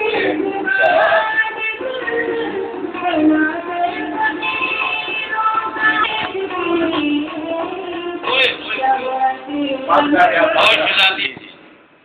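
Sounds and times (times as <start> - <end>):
musical accompaniment: 0.0 - 10.9.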